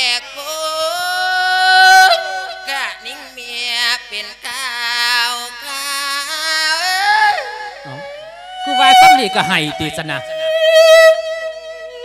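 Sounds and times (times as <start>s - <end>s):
man chanting into a microphone: 0.0s - 10.4s.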